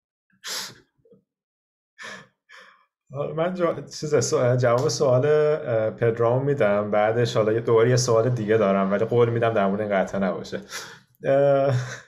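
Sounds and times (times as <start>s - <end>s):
breathy laughing exhalations: 11.7s - 12.0s.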